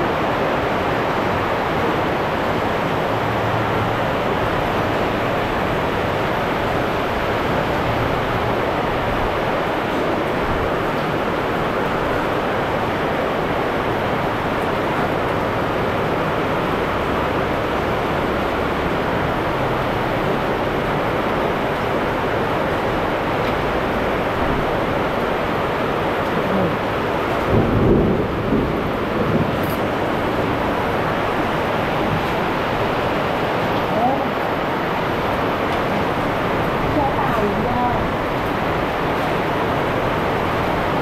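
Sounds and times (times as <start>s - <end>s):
heavy rain pouring: 0.0s - 41.0s.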